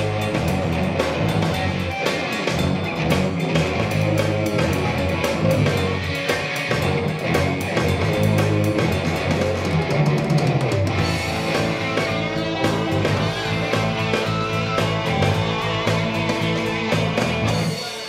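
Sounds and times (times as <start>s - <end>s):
bass guitar: 0.0s - 18.0s
drum kit and cymbals: 0.0s - 18.0s
electric guitar: 0.0s - 18.0s.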